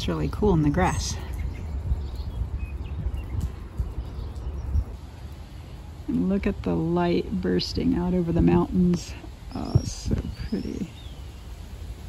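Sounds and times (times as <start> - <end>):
wind on microphone: 0.0 - 5.0, 7.8 - 12.0.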